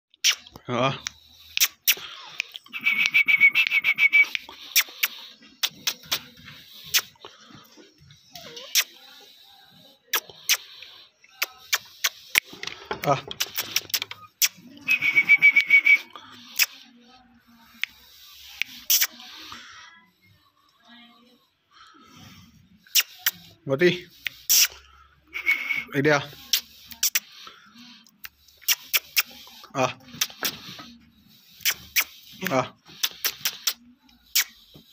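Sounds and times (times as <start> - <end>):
dog whimpering: 8.1 - 9.2
sharp clicks: 11.4 - 14.6.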